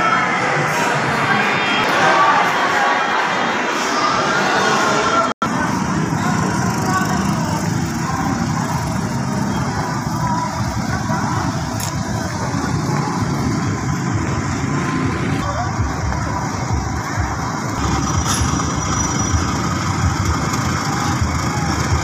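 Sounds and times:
distant voices: 0.0s - 22.0s
passing traffic hum: 0.0s - 22.0s
restaurant crowd chatter: 0.0s - 22.0s.

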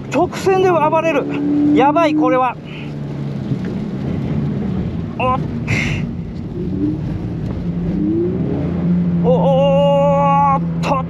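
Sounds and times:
car engine pulling under throttle: 0.0s - 11.0s.

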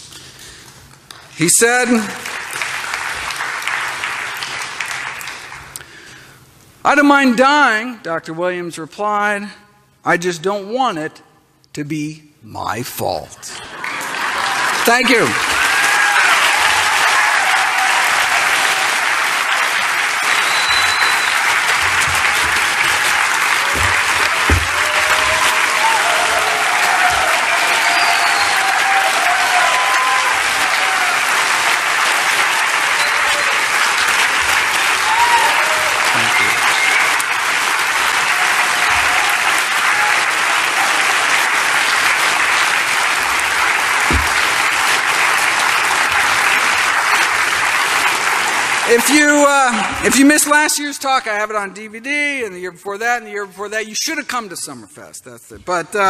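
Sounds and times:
large audience applauding: 1.1s - 6.1s, 13.6s - 50.6s.

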